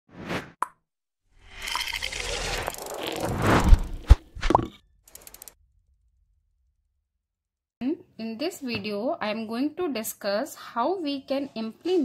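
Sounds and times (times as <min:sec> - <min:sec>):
short whoosh: 0:02.5 - 0:04.4.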